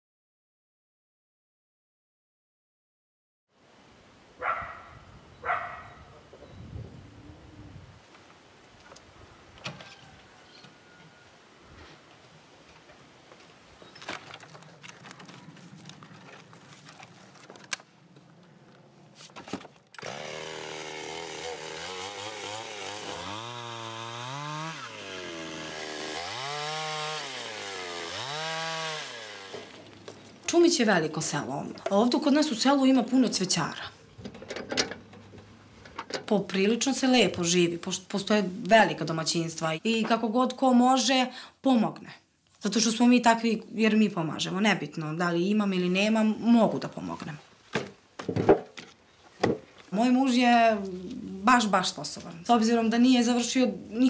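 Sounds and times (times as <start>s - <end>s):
outdoor background hiss: 3.5s - 21.6s, 26.7s - 54.0s
dog barking: 4.4s - 6.1s
chainsaw revving: 20.0s - 30.0s.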